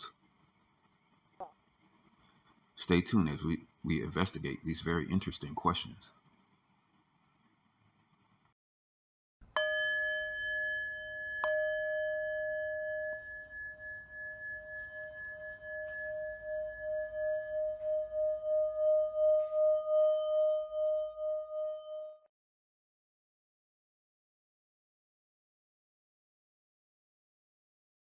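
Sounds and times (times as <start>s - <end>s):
metal singing bowl ringing: 9.6s - 22.2s.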